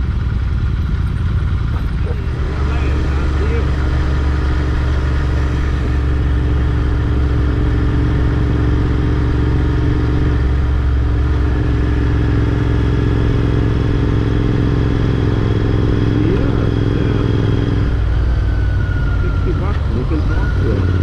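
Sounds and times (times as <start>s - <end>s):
motorcycle engine cruising: 0.0s - 21.0s
road and wind noise: 0.0s - 21.0s.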